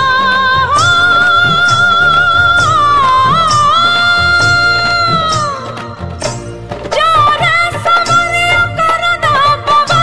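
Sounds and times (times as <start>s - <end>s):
woman singing folk song: 0.0s - 6.2s, 6.9s - 10.0s
drum-led instrumental: 0.0s - 10.0s.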